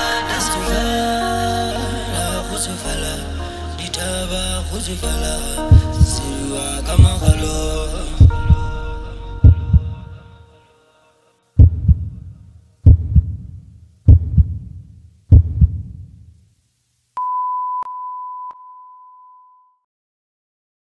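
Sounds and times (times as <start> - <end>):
song music: 0.0 - 11.2
heartbeat double thumps: 5.7 - 6.2, 7.0 - 7.6, 8.2 - 8.7, 9.4 - 10.1, 11.6 - 16.2
long steady high beep: 17.2 - 19.8.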